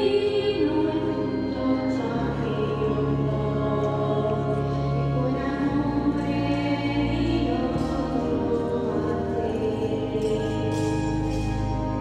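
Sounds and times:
women's choir singing: 0.0s - 11.4s.

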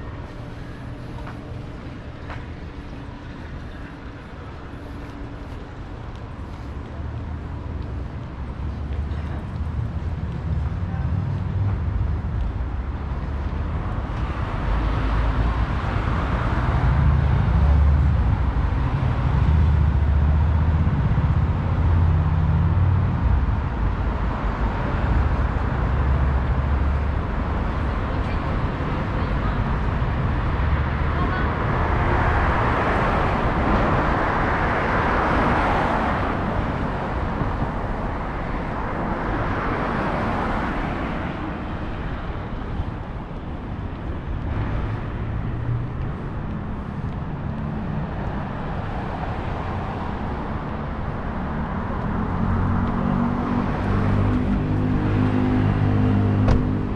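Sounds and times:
car engines and tyres: 0.0s - 56.9s
cars passing close by: 0.0s - 56.9s.

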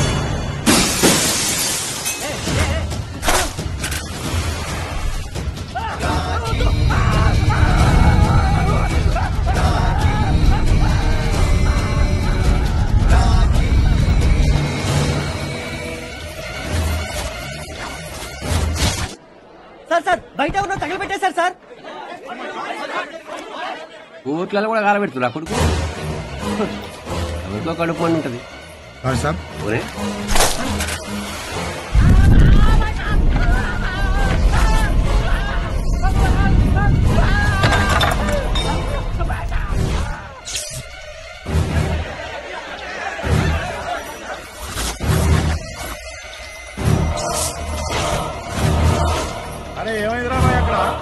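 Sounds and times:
dramatic film music: 0.0s - 1.5s, 2.2s - 19.2s, 25.4s - 51.0s
glass shattering: 0.6s - 2.7s, 37.6s - 38.9s.

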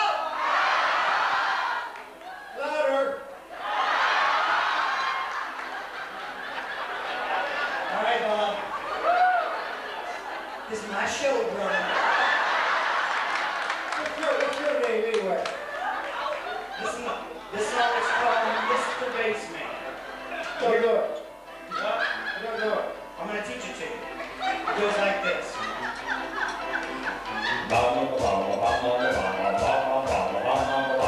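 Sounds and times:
audience laughing: 3.5s - 23.2s, 24.0s - 31.0s
audience applauding: 3.6s - 7.9s, 12.2s - 16.9s
crowd voices: 15.4s - 31.0s.

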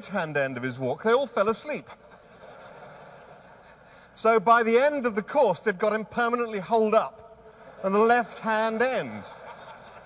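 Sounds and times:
faint hall room tone hiss: 0.0s - 10.0s.

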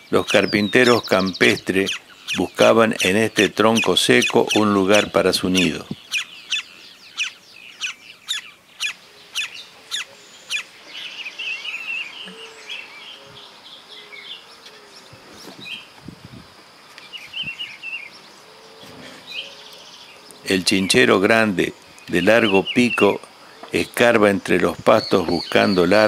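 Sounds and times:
wild birds calling: 0.0s - 26.0s.

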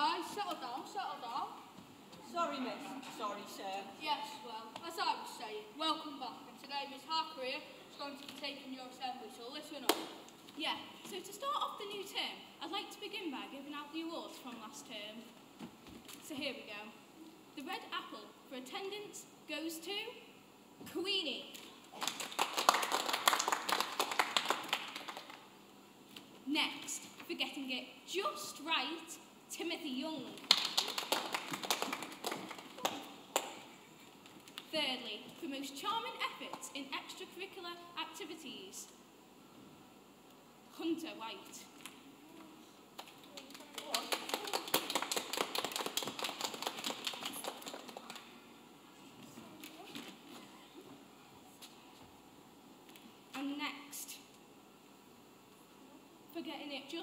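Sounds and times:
hands clapping: 21.5s - 25.5s, 30.4s - 34.7s, 43.0s - 48.3s
crowd applauding: 22.0s - 25.4s, 30.5s - 33.6s, 43.3s - 48.3s.

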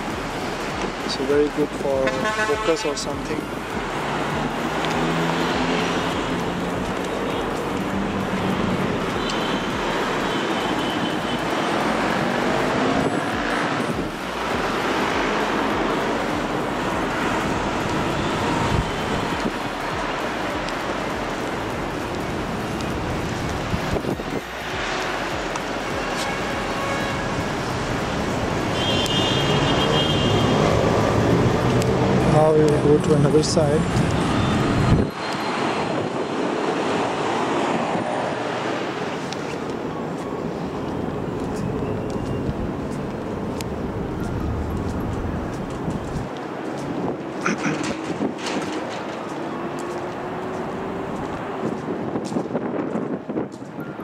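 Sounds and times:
city road traffic hum: 0.0s - 54.0s.

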